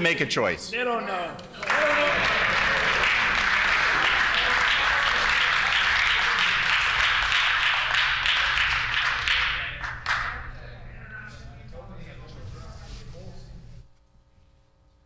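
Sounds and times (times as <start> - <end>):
applause: 1.6 - 10.5.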